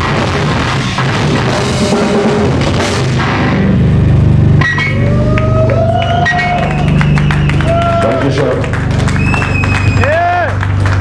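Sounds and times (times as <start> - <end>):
live metal band playing: 0.0 - 11.0.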